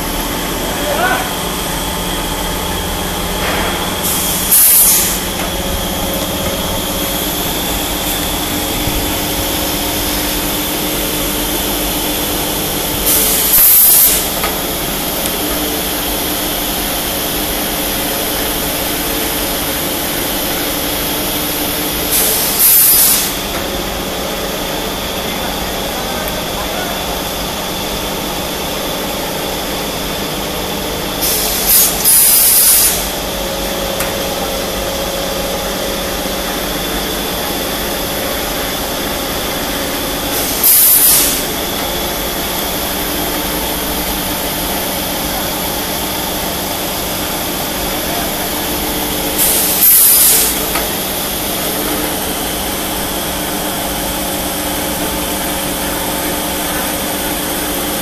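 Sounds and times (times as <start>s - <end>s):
workshop machinery running: 0.0s - 58.0s
loud hiss: 3.4s - 10.6s, 12.9s - 15.2s, 21.2s - 23.5s, 31.2s - 33.3s, 38.2s - 44.7s, 48.4s - 53.6s.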